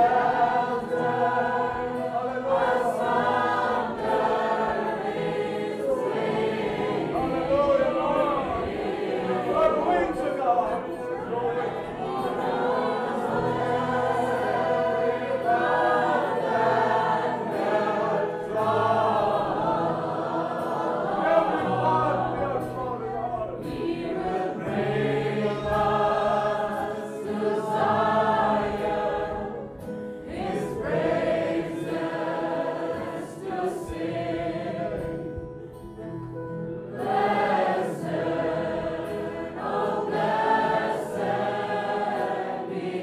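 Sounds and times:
group singing a hymn: 0:00.0 - 0:43.0.

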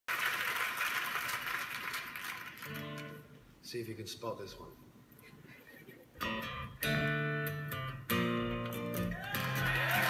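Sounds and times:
crackly hiss from speakers: 0:00.1 - 0:06.5.

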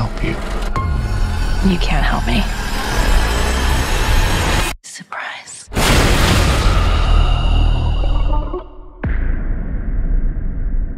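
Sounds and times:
horror soundtrack music and effects: 0:00.0 - 0:04.8, 0:05.7 - 0:10.9
faint breathy whisper: 0:04.8 - 0:05.7
loud hit: 0:05.8 - 0:08.2.

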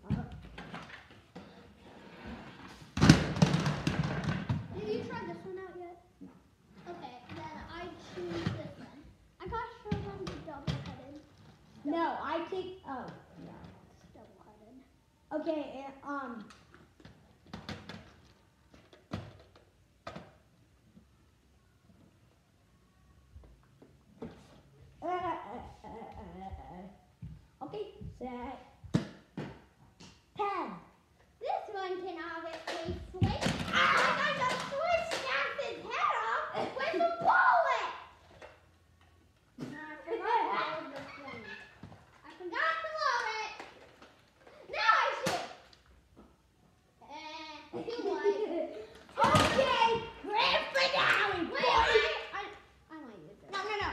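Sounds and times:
children talking and shouting: 0:04.0 - 0:16.7, 0:30.0 - 0:39.0, 0:39.6 - 0:45.9, 0:46.9 - 0:53.9
children laughing: 0:47.7 - 0:52.3.

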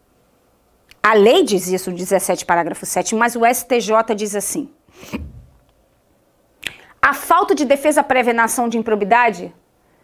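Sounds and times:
soft low thump: 0:05.2 - 0:05.6.

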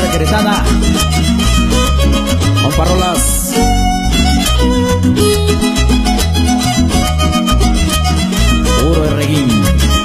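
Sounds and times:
pulsing bass: 0:00.0 - 0:10.0
strummed strings: 0:00.0 - 0:10.0
violin melody: 0:00.0 - 0:10.0.

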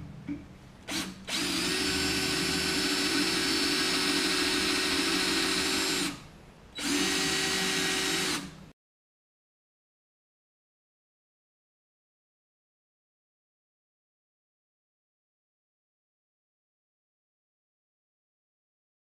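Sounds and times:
drill drilling into steel tube: 0:00.9 - 0:08.6.

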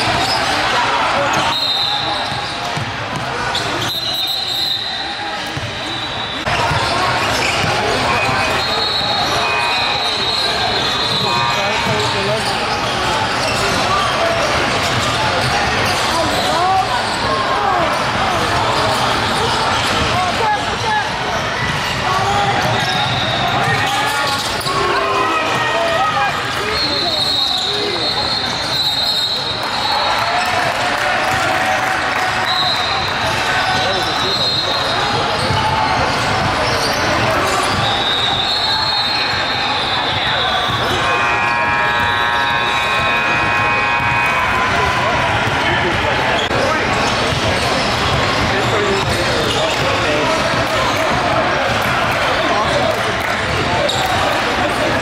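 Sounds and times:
voices of players and spectators: 0:00.0 - 0:55.0.

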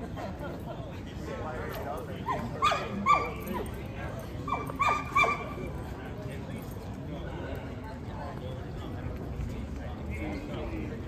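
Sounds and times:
dog yelping: 0:02.3 - 0:03.6, 0:04.5 - 0:05.5.

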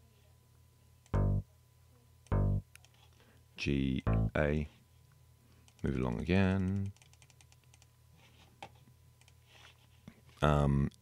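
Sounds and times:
synth bass note: 0:01.2 - 0:01.4, 0:02.3 - 0:02.6, 0:04.0 - 0:04.4.

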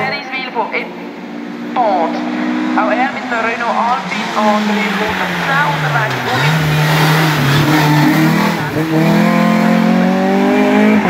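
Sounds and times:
race car engine revving: 0:00.0 - 0:11.0.

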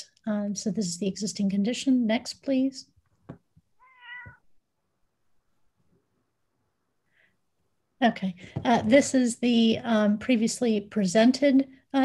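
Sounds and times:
cat meowing: 0:03.8 - 0:04.5.

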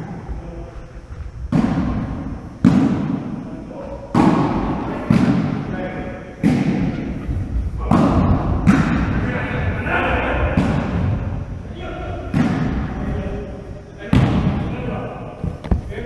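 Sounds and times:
volleyball struck by hands: 0:01.5 - 0:03.4, 0:04.1 - 0:05.6, 0:06.4 - 0:07.0, 0:07.8 - 0:09.2, 0:10.4 - 0:11.4, 0:12.3 - 0:13.0, 0:14.1 - 0:14.7.

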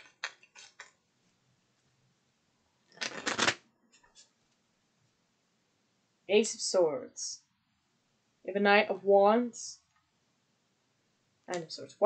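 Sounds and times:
cards being shuffled: 0:00.0 - 0:01.0, 0:03.0 - 0:03.6.

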